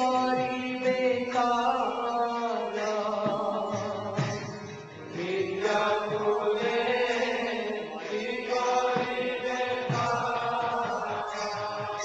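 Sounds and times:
devotional chanting: 0.0 - 12.0
musical accompaniment: 0.0 - 12.0.

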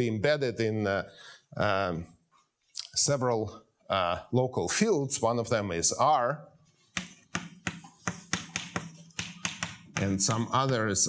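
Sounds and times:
chalk tapping and scraping on blackboard: 6.7 - 11.0.

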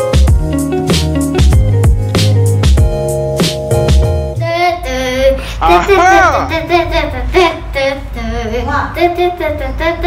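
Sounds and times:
backing music: 0.0 - 6.8
young child singing without words: 4.4 - 10.0.

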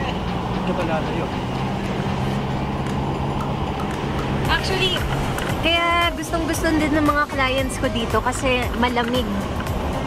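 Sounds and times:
car engine hum: 0.0 - 10.0
road noise inside car: 0.0 - 10.0.

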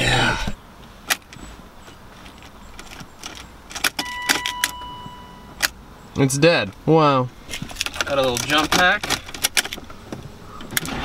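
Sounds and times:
ignition clicks: 1.1 - 6.8
steady electronic beep: 4.0 - 5.6.

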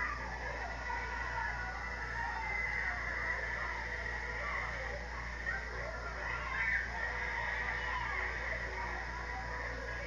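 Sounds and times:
children giggling and squealing: 0.0 - 10.0
steady low hum: 0.0 - 10.0.

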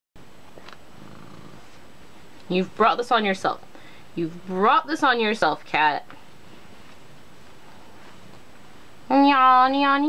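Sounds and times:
cat purring: 1.0 - 1.8.

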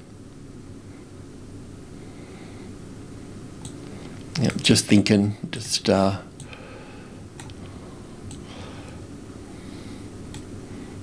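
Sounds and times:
low background hum with hiss: 0.0 - 11.0.

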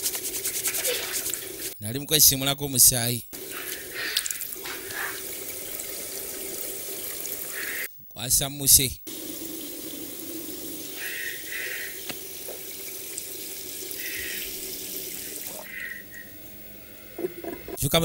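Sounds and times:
tap water running into sink: 3.4 - 7.8, 9.1 - 15.6.

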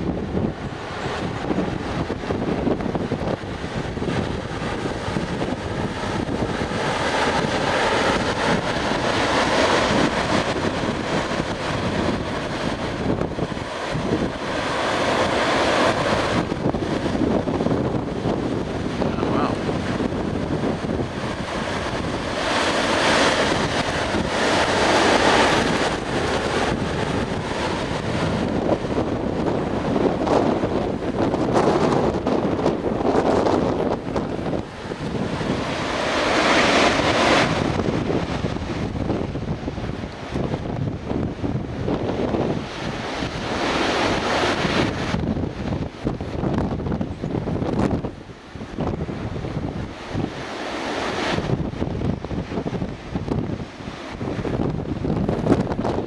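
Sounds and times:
gusty wind on microphone: 0.0 - 56.0
surf breaking on beach: 0.0 - 56.0.

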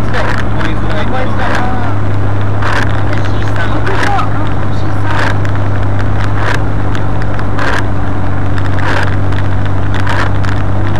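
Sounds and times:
car engine and road noise: 0.0 - 10.9
windscreen wipers swishing: 0.0 - 10.9.

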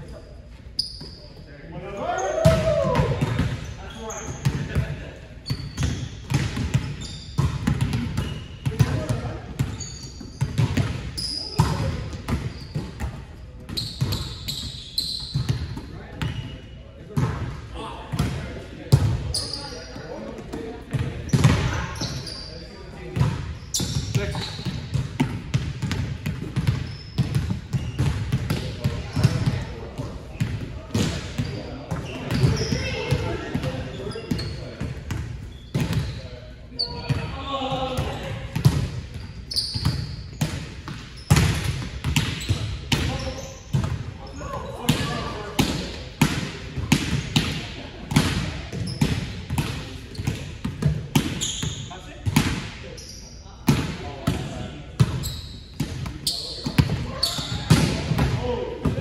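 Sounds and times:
players' voices: 0.0 - 6.0, 8.7 - 10.0, 15.5 - 25.4, 26.3 - 40.7, 41.5 - 59.0.

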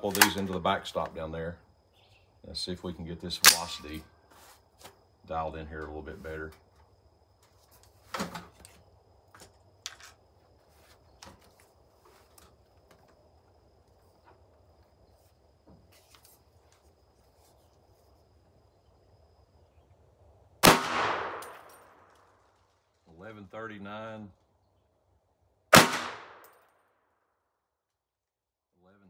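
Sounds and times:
rifle handling clicks: 0.0 - 0.6, 3.4 - 3.8
rifle shot echoing: 20.6 - 22.1, 25.7 - 26.5.

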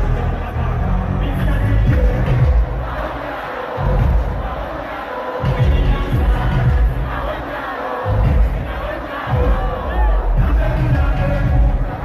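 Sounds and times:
crowd shouting and singing along: 0.0 - 12.0
live music with heavy bass beat: 0.0 - 12.0.

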